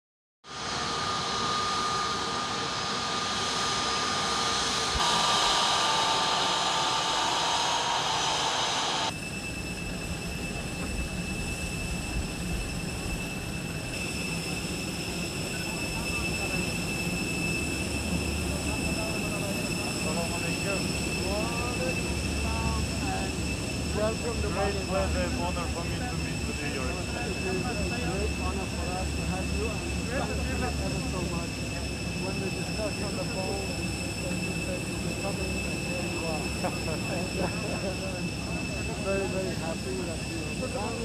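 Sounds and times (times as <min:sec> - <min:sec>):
high whine of parked jet: 0:00.4 - 0:41.0
jet engines roaring: 0:00.5 - 0:41.0.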